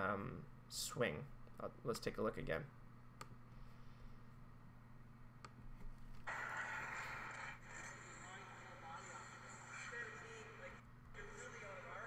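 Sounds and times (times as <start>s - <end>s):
low electrical hum: 0.0s - 12.0s
ice rink room noise: 6.2s - 12.0s.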